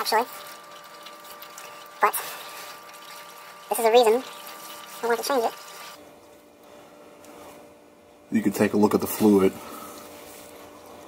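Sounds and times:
fluid trickling into a pan: 0:00.0 - 0:06.0
steady background hum: 0:00.0 - 0:11.0.

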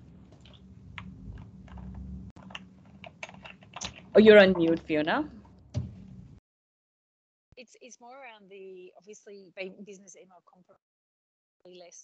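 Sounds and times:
low steady hum: 0:00.0 - 0:06.4
keyboard typing clicks: 0:01.7 - 0:04.1.

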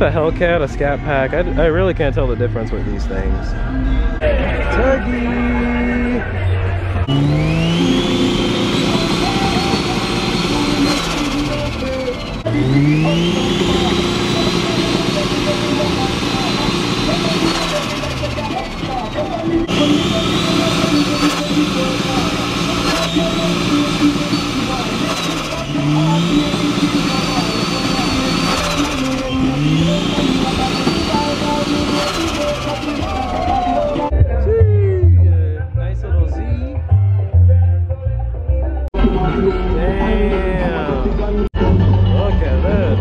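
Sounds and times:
car engine revving: 0:05.1 - 0:34.2.

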